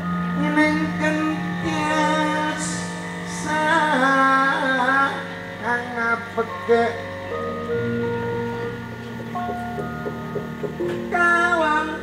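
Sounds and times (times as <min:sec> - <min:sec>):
person singing with wavering voice: 0:00.0 - 0:08.9, 0:10.1 - 0:12.0
gamelan music: 0:00.0 - 0:12.0.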